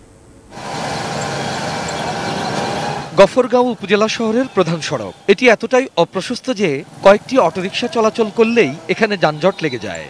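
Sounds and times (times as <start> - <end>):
road noise: 0.5 - 10.0
small vehicle engines: 0.5 - 10.0.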